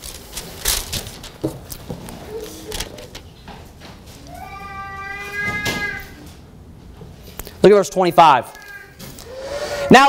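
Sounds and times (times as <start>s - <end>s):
pages rustling: 0.0s - 3.3s.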